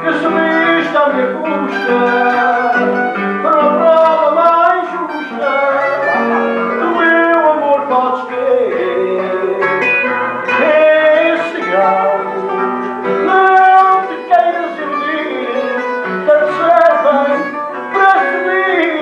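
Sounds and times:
man singing: 0.0s - 19.0s
plucked guitars: 0.0s - 19.0s.

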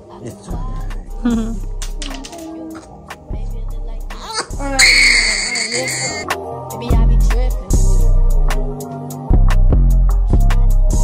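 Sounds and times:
baby crying: 4.3s - 6.2s.

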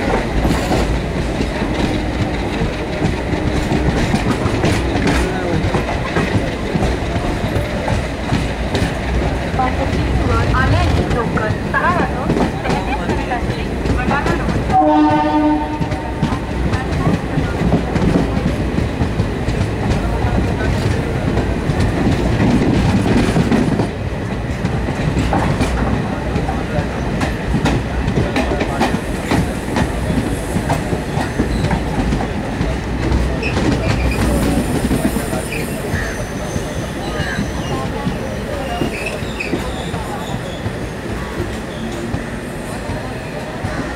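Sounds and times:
train rumble: 0.0s - 43.9s
train horn: 14.7s - 16.4s.

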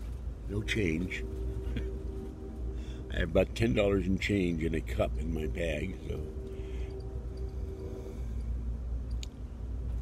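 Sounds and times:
train rumble: 0.0s - 10.0s
thin steady tone: 0.4s - 9.8s.

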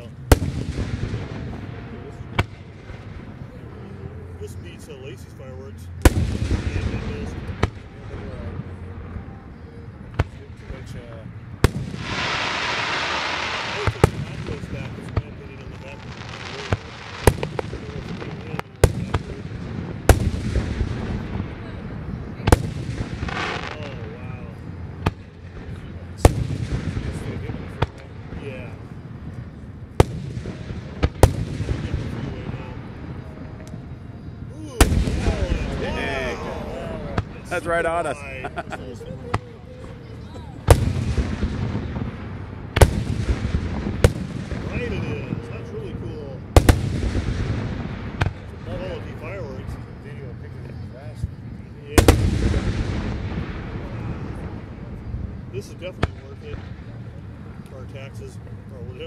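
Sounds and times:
fireworks bursting: 0.0s - 9.3s, 9.9s - 59.0s.

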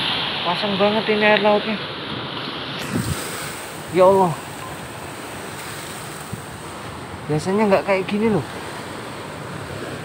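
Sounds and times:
waves breaking on shore: 0.0s - 10.0s.

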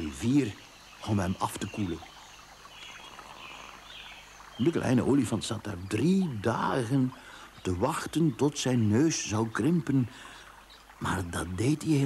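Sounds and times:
low background hiss: 0.0s - 12.0s
soft bird chirps: 0.0s - 12.0s.

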